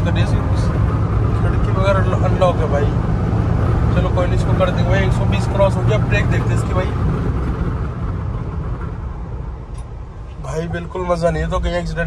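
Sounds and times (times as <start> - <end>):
road and wind noise in car cabin: 0.0 - 12.0.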